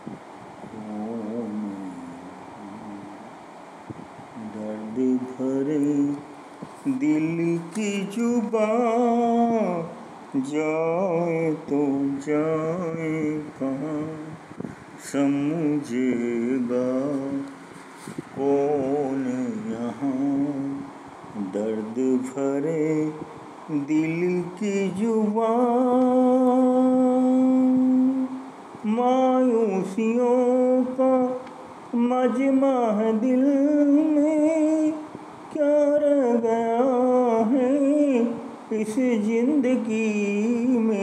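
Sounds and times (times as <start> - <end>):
person singing unaccompanied: 0.0 - 3.4, 4.3 - 41.0.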